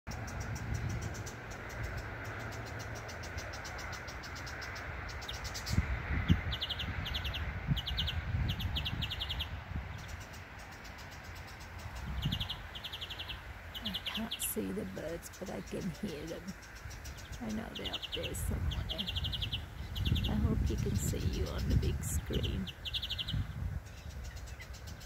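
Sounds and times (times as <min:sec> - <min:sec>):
birds calling: 0:00.1 - 0:25.0.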